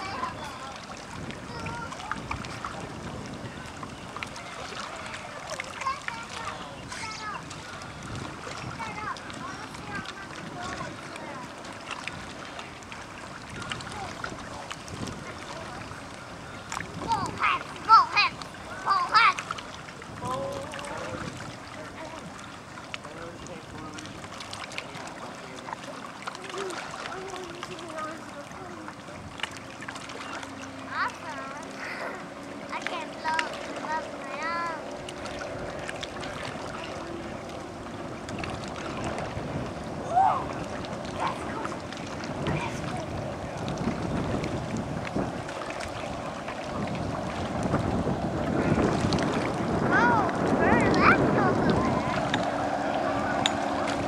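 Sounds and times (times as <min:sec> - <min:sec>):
distant motorboat rumble: 0:00.0 - 0:54.0
faint indistinct voices: 0:00.0 - 0:54.0
water lapping: 0:00.0 - 0:54.0.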